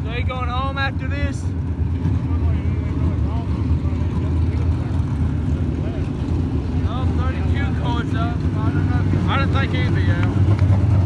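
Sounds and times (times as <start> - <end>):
race car engines rumbling: 0.0 - 11.0
faint voices: 1.9 - 10.6.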